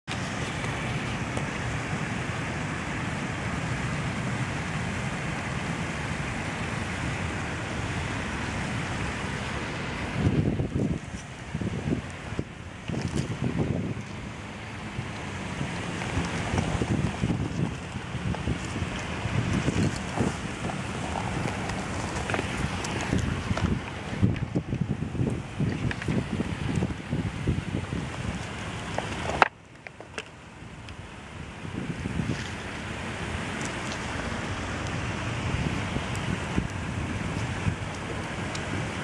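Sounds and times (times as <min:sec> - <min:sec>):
wind blowing across microphone: 0:00.1 - 0:39.0.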